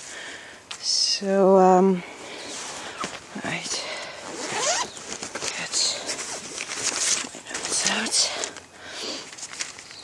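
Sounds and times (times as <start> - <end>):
rustling of handled things: 2.0 - 10.0
zipper rasping: 4.2 - 5.0.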